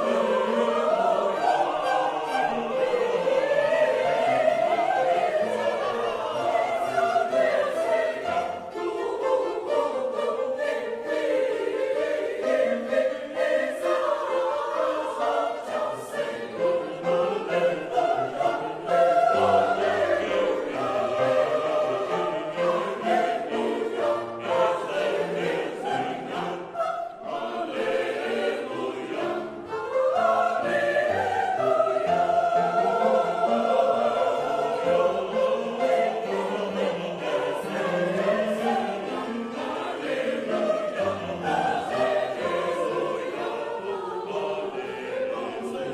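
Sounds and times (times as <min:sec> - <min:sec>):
mixed choir singing: 0:00.0 - 0:45.9.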